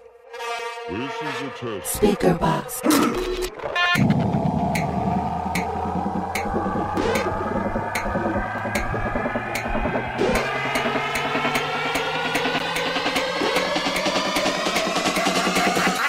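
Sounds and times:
rising synth tones: 0:03.3 - 0:16.0
drum hits: 0:04.0 - 0:16.0.

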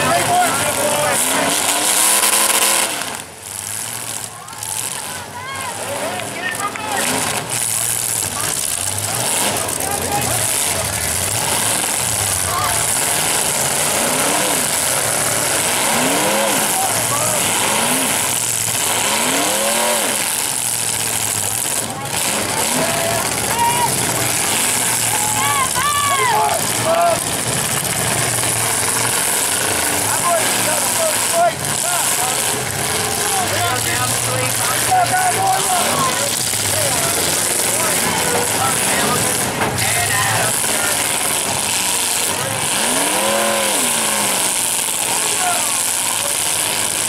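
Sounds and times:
car engines revving: 0:00.0 - 0:47.0.

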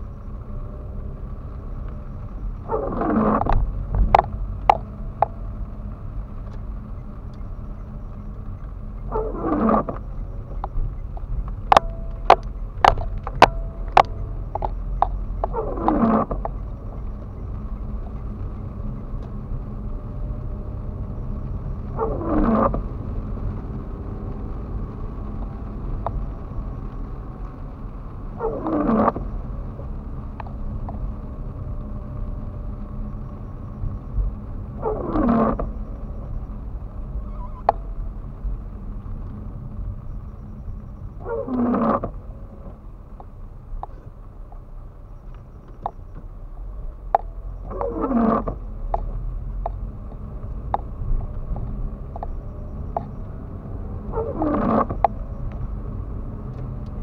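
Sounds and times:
engine and tyres on wet road: 0:00.0 - 0:57.0
windscreen wipers swishing: 0:00.0 - 0:57.0
sharp clicks: 0:06.4 - 0:18.3.

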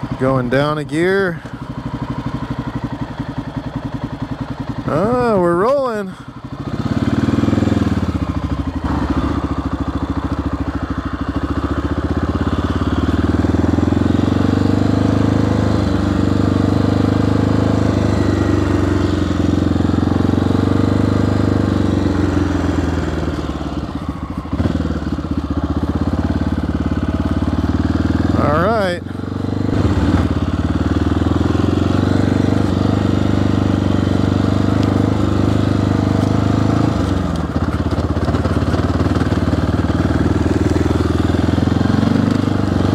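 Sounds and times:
motorcycle engine running: 0:00.0 - 0:42.9.

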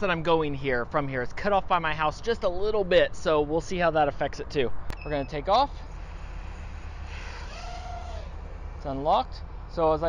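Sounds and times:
drone motors whining: 0:05.0 - 0:10.0
low hum: 0:05.0 - 0:10.0.

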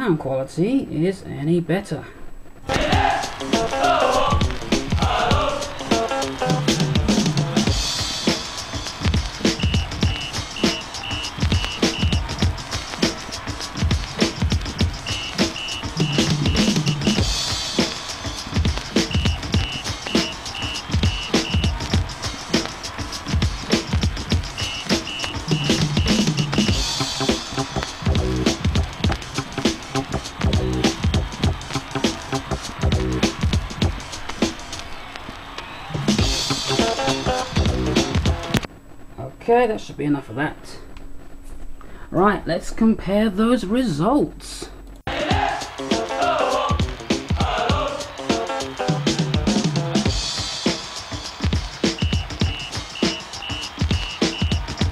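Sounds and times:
vinyl record music with drum beat: 0:02.4 - 0:39.0, 0:44.7 - 0:54.9.

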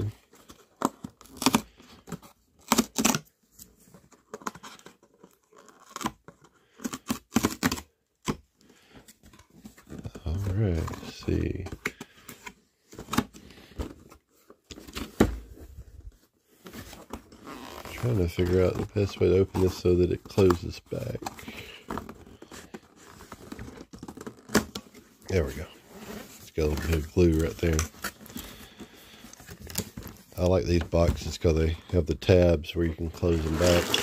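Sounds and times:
cardboard tearing and crackling: 0:00.0 - 0:03.3, 0:04.0 - 0:07.9, 0:16.5 - 0:31.1, 0:33.0 - 0:34.0
cardboard handling rustle: 0:00.0 - 0:07.8, 0:08.4 - 0:34.0.

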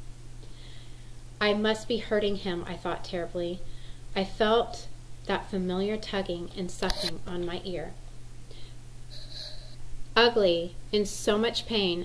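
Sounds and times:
low electrical hum: 0:00.0 - 0:12.0
woman's soft breath: 0:00.4 - 0:01.2, 0:08.5 - 0:09.8.

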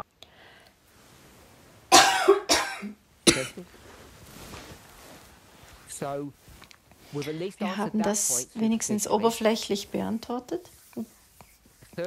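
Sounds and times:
person coughing: 0:01.9 - 0:03.6.

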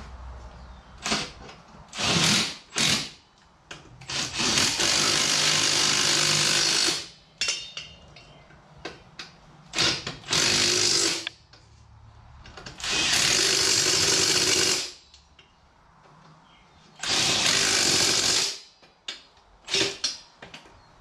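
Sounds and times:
power tool spinning: 0:12.8 - 0:14.9.

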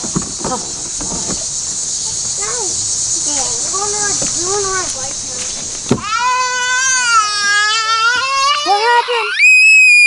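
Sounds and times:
thump: 0:05.6 - 0:06.1
child wailing in pain: 0:06.0 - 0:10.0.

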